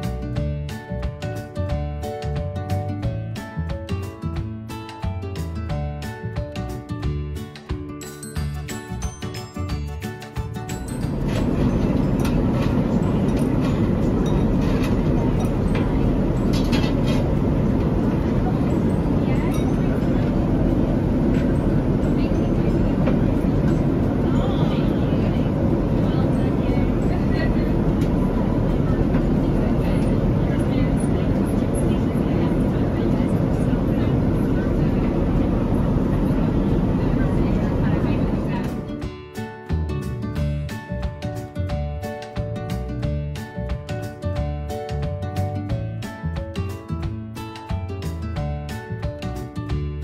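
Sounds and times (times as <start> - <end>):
airliner cabin roar: 10.7 - 39.1
jet engine and airflow rumble: 10.7 - 39.1
faint voices: 11.1 - 39.0.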